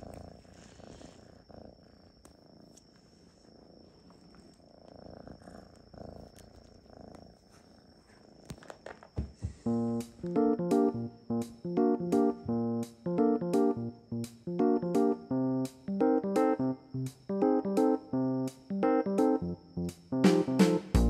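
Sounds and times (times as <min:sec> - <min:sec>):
cat purring: 0:00.0 - 0:10.9
piano music: 0:09.7 - 0:19.6, 0:20.2 - 0:21.0.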